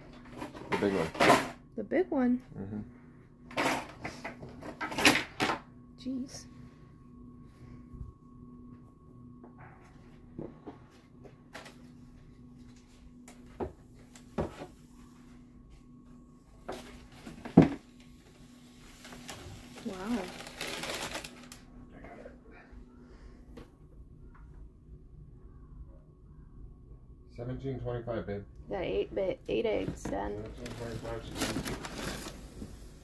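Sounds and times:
rustling paper: 18.8s - 21.7s, 30.3s - 33.0s.

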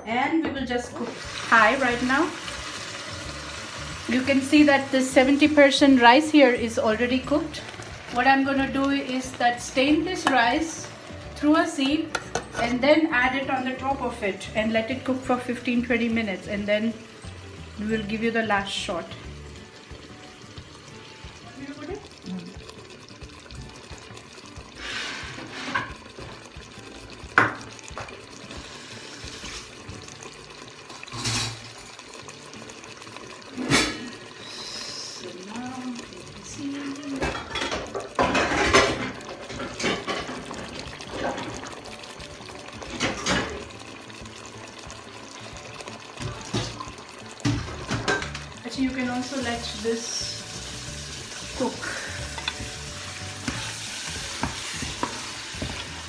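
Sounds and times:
water running: 0.0s - 56.0s
pots and utensils clattering: 4.2s - 13.8s, 24.6s - 34.4s, 37.0s - 56.0s.

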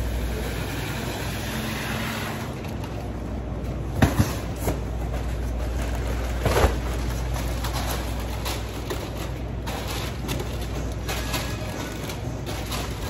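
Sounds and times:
hand truck rolling on hard floor: 4.0s - 13.0s.

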